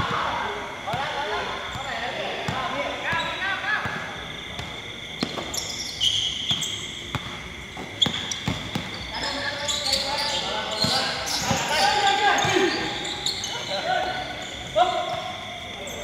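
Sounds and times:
shoe squeaks: 0:03.1 - 0:03.5, 0:04.8 - 0:16.0
basketball bouncing on hard court: 0:06.5 - 0:09.0.

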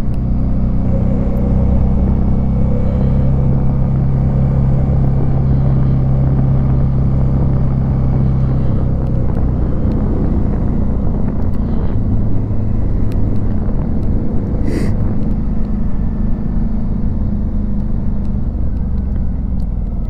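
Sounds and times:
motorcycle engine cruising: 0:00.0 - 0:20.0
rushing wind: 0:00.0 - 0:20.0.

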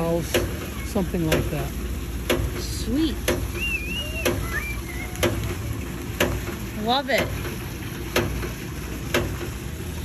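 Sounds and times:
water pump valve clacking: 0:00.0 - 0:10.0.

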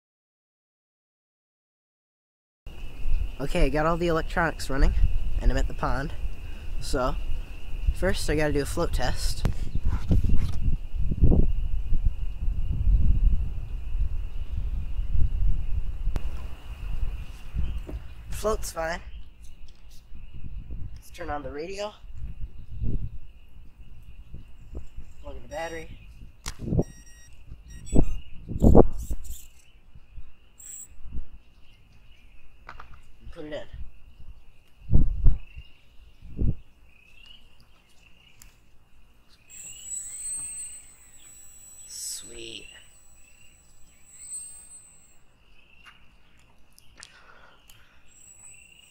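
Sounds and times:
wind buffeting microphone: 0:02.8 - 0:36.8
faint high chirping: 0:22.4 - 0:32.6, 0:33.2 - 0:48.9
thin steady high whine: 0:23.7 - 0:31.3, 0:38.4 - 0:45.7, 0:47.8 - 0:48.9.

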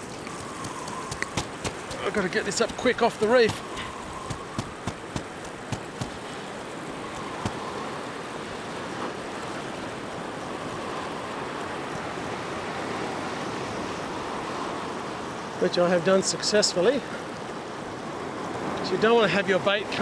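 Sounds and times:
ocean surf on rocks: 0:00.0 - 0:20.0.

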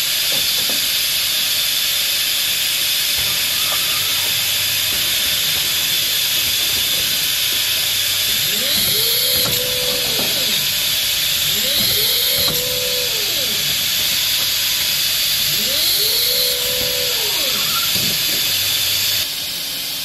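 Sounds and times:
motor whine: 0:00.0 - 0:19.5
machine steady hiss: 0:00.0 - 0:20.0.

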